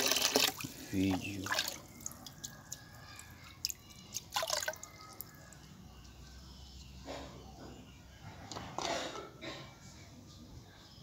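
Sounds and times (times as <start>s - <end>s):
water splashing in a tub: 0.0s - 4.9s
water dripping: 0.0s - 5.7s.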